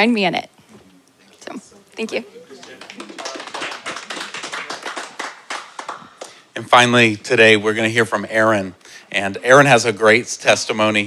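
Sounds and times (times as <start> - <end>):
audience applauding: 2.1 - 6.5.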